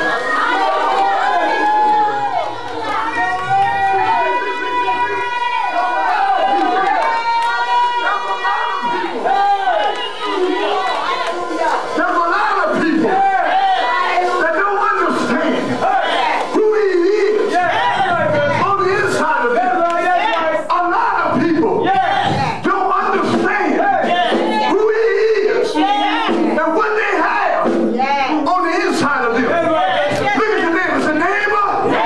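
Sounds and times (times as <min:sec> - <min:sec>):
congregation shouting: 0:00.0 - 0:32.0
man speaking through microphone: 0:11.4 - 0:13.5, 0:14.1 - 0:27.7, 0:28.4 - 0:32.0.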